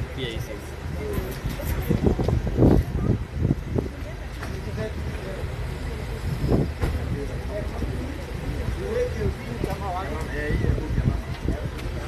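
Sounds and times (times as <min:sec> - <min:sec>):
faint voices talking: 0:00.0 - 0:12.0
street traffic: 0:00.0 - 0:12.0
vehicle engine rumble: 0:00.0 - 0:12.0.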